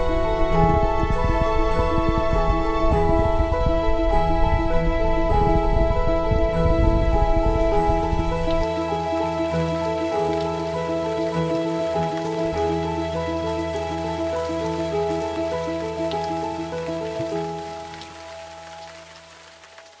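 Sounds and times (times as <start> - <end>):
background music sustained notes: 0.0 - 20.0.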